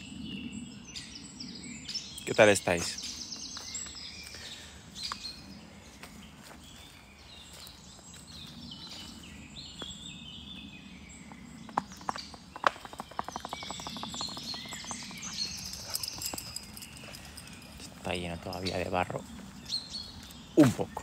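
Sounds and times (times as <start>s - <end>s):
songbirds singing: 0.0s - 21.0s
sharp knocks: 11.7s - 15.1s
rapid even taps: 11.7s - 16.5s.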